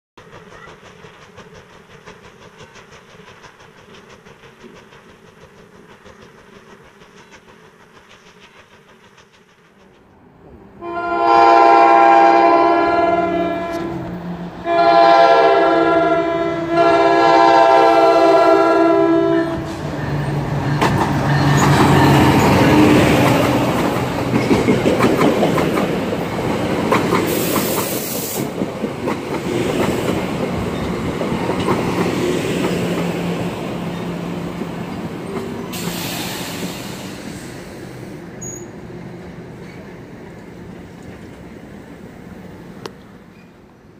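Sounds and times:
train engine rumble: 0.2 - 43.9
train air horn blasts: 10.8 - 19.8
wheels clacking over rail joints: 19.6 - 35.9
air hiss: 27.2 - 28.6, 35.4 - 38.7.

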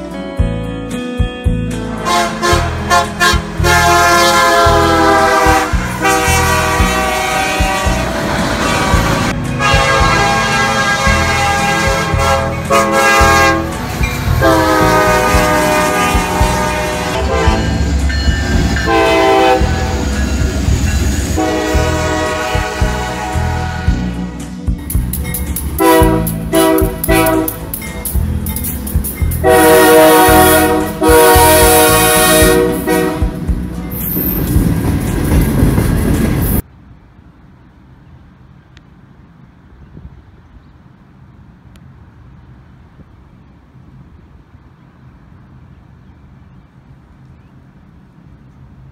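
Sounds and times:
passing train rumble: 1.2 - 48.9
locomotive air horn blasts: 1.8 - 20.4, 21.1 - 24.2, 25.7 - 27.8, 29.4 - 33.6.

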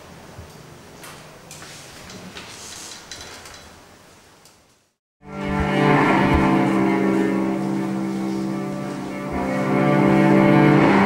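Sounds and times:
cello bowed sustained note: 5.2 - 11.0.

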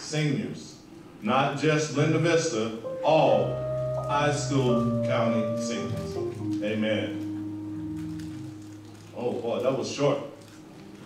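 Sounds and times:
held musical chord: 2.8 - 9.4.

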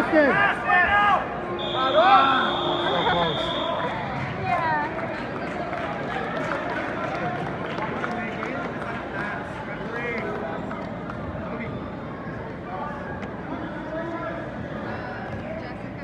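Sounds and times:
crowd voices and shouts: 0.0 - 16.0.

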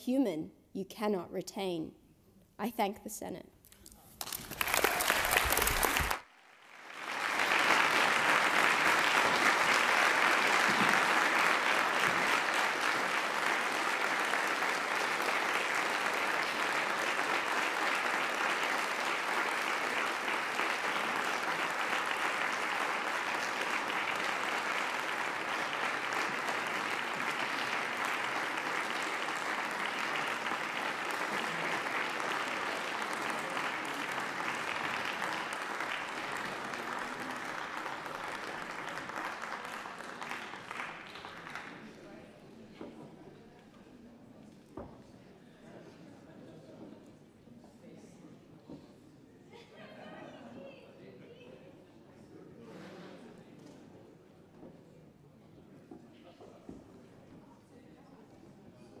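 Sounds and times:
crowd applauding: 4.2 - 42.2.

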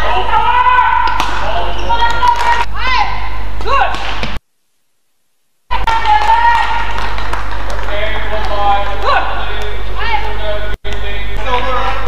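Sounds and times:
shoes squeaking on court floor: 1.0 - 2.3.

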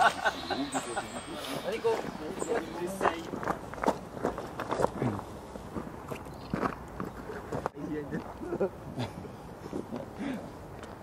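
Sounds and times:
people talking indistinctly: 0.0 - 3.6
footsteps: 1.0 - 8.4.

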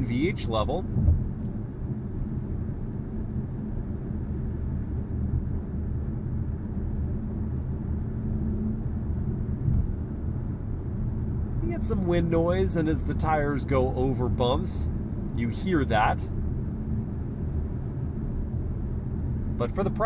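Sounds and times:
wind noise: 0.8 - 2.1, 9.1 - 11.8.

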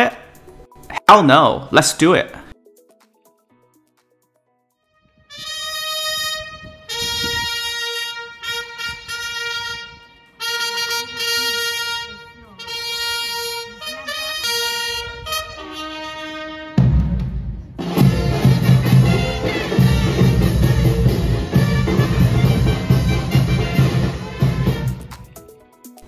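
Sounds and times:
solo brass horn call: 5.2 - 16.9, 17.9 - 25.1
band with drums: 16.8 - 25.4.

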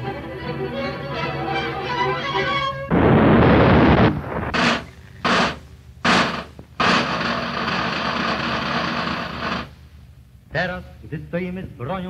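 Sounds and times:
snare drum roll: 3.3 - 9.8
side drum stroke: 4.2 - 7.0.

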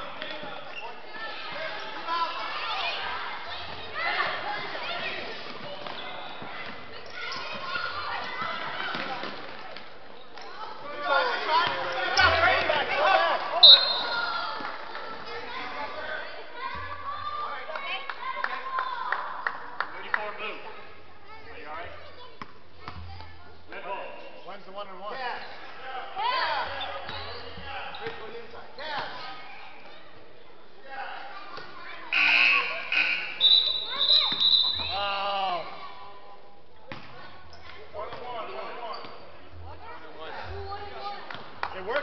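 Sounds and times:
spectators' voices: 0.0 - 42.0
referee's whistle blast: 13.6 - 14.2, 32.2 - 35.0
scoreboard buzzer: 32.2 - 33.3.

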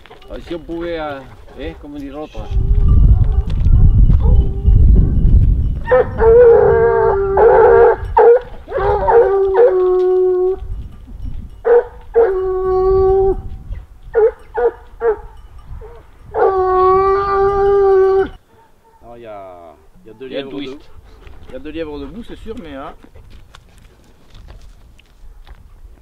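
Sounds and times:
hounds barking: 1.0 - 3.5, 5.8 - 10.6, 11.6 - 12.8, 14.1 - 23.0
hounds howling: 1.1 - 4.9, 5.8 - 10.7, 11.6 - 13.5, 14.1 - 23.0.

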